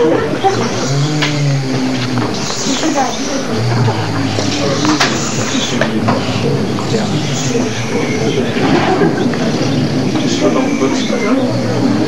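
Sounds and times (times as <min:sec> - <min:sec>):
overlapping indistinct voices: 0:00.0 - 0:12.0
steady background rumble: 0:00.0 - 0:12.0.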